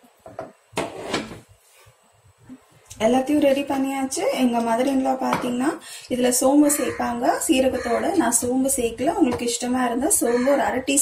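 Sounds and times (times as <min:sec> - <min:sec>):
scrape and knock on metal: 0:00.8 - 0:01.4.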